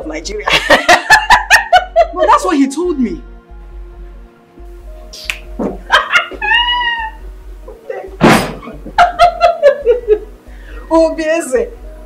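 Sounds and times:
soft music of held tones: 0.0s - 12.0s
high arching cry: 5.9s - 7.3s.

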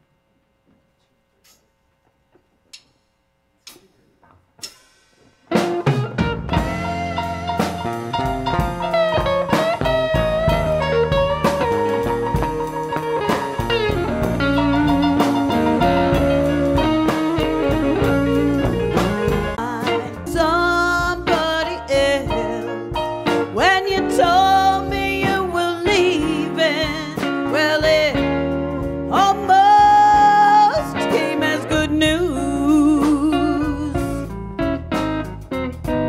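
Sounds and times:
electric blues band playing: 4.6s - 36.0s.

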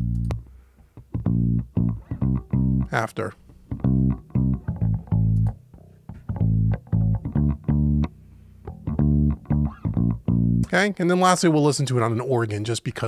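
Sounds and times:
electric bass guitar plucked notes: 0.0s - 10.8s.

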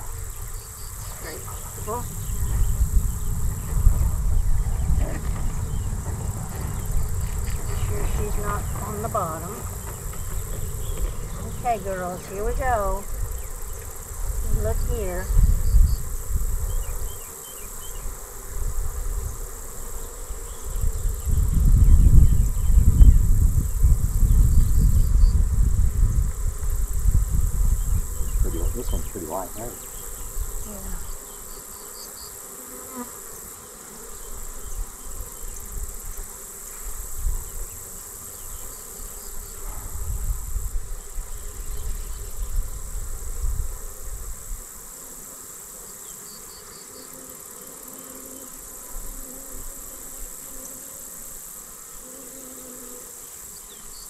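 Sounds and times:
honeybees buzzing: 0.0s - 54.0s
low rumble: 1.0s - 13.2s.

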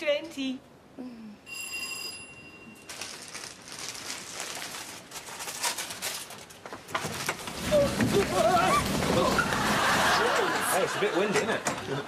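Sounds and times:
brief ringing tone: 1.4s - 2.9s.

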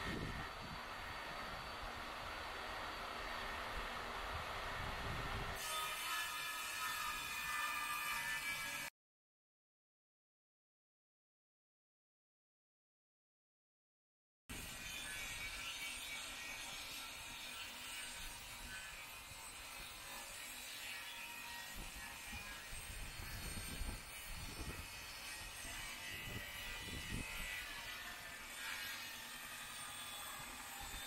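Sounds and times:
table saw ripping wood: 5.6s - 8.9s.

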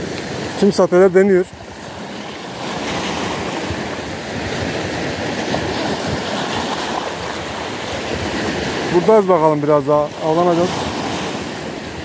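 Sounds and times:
waves washing over rocks: 0.0s - 12.0s.

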